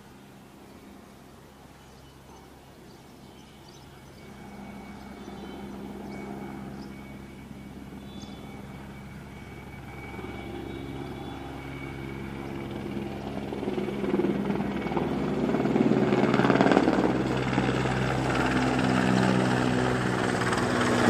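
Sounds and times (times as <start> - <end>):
helicopter flying overhead: 0.0 - 21.0.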